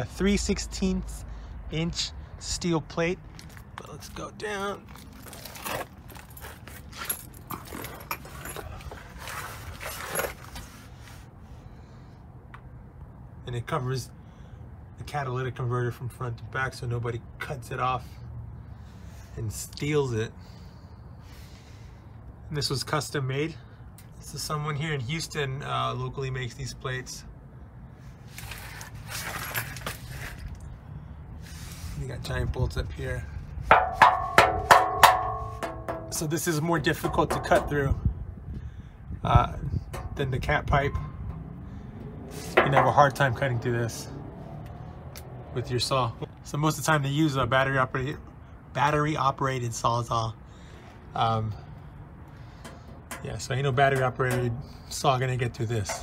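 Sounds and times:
phone handling rustles and scuffs: 4.8 - 11.2
knocks on steel plate: 33.7 - 36.2.

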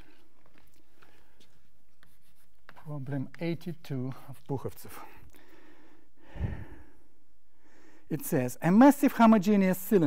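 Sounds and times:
chalk scratching on blackboard: 1.4 - 3.8.

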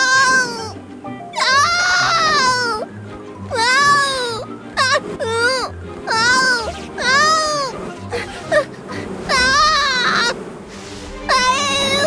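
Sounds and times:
cartoon character high-pitched cries: 1.4 - 2.9, 9.3 - 10.3.

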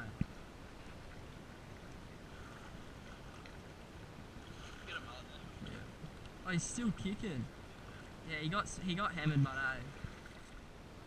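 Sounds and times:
wind: 0.0 - 11.0
small waves lapping on rocks: 0.8 - 10.8.

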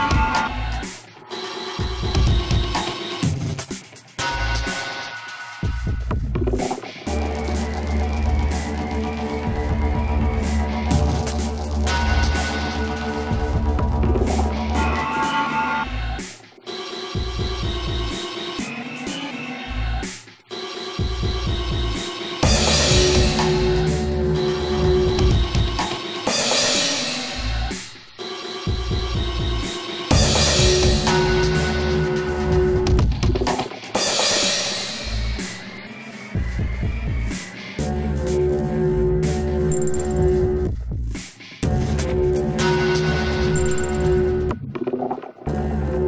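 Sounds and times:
industrial electronic dance music: 0.0 - 46.0
bass pulses: 6.3 - 15.0, 36.4 - 41.0, 41.6 - 46.0
deep bass throbs: 9.6 - 14.8.

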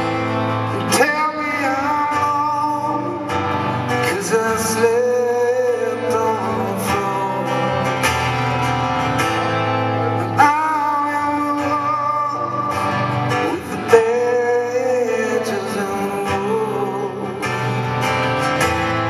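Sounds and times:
acoustic guitar: 0.0 - 19.0.

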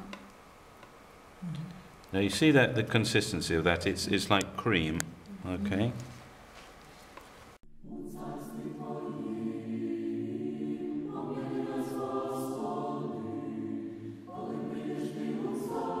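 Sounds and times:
choir singing sustained chords: 7.7 - 16.0.

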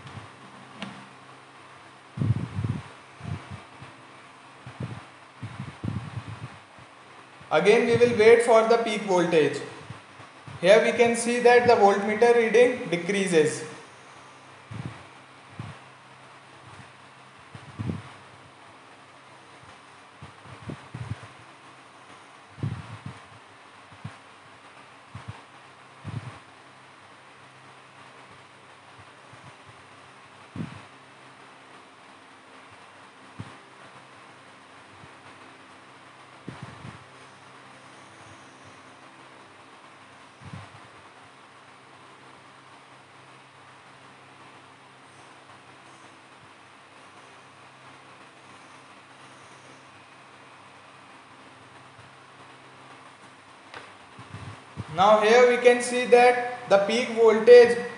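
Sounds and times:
faint hum: 0.0 - 57.9
steady low hiss: 0.0 - 57.9.

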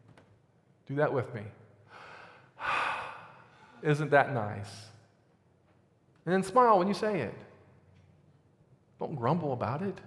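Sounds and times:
man inhaling: 1.8 - 3.8.

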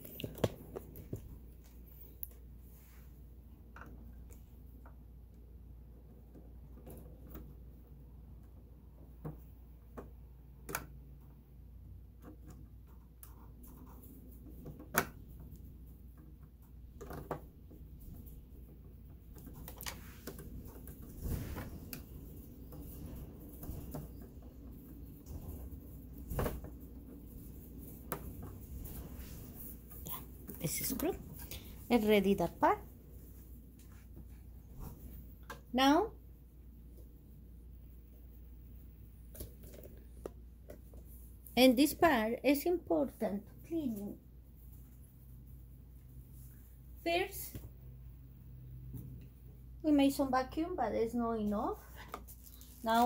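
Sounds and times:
handling rustle: 51.8 - 53.0.

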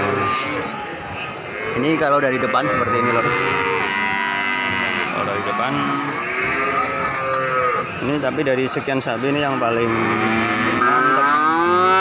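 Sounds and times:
cattle mooing: 0.0 - 12.0
man talking: 1.8 - 3.4, 8.0 - 10.0.

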